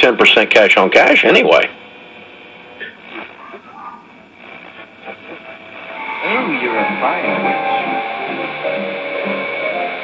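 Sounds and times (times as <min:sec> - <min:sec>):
faint radio voices: 0:00.0 - 0:10.0
radio static and hiss: 0:00.0 - 0:10.0.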